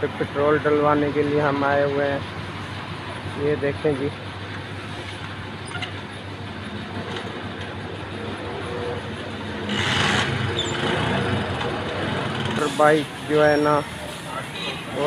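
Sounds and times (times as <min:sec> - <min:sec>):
road and vehicle noise: 0:00.0 - 0:15.0.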